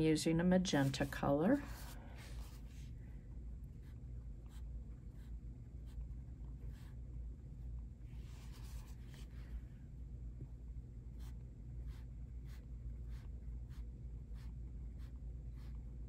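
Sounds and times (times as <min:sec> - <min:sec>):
pencil scratching on plastic: 0:11.2 - 0:15.8.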